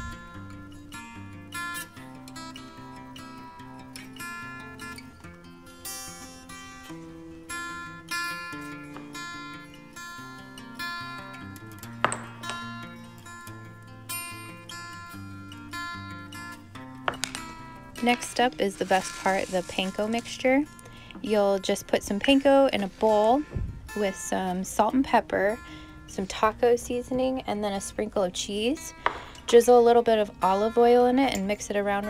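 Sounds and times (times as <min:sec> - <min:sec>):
acoustic guitar plucked: 0:00.0 - 0:32.0.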